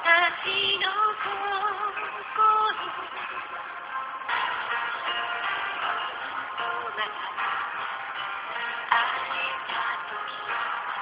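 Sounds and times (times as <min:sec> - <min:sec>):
woman singing with vibrato: 0:00.0 - 0:03.6, 0:06.4 - 0:07.8, 0:08.8 - 0:11.0.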